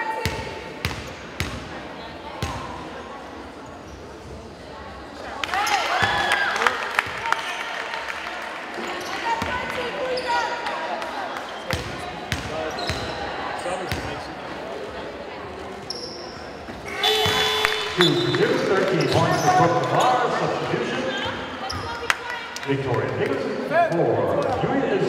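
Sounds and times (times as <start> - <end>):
players' voices: 0.0 - 25.0
sneaker squeaks: 8.9 - 10.7, 11.5 - 13.3, 15.8 - 20.3, 21.1 - 22.2.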